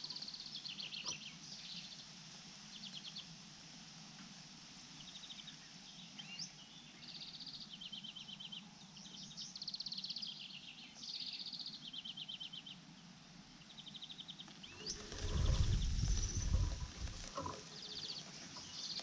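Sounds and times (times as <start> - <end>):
low rumbling rustle near microphone: 14.6 - 19.0.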